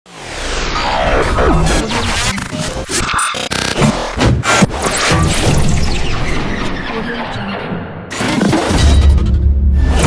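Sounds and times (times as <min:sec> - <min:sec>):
music: 0:08.0 - 0:10.0.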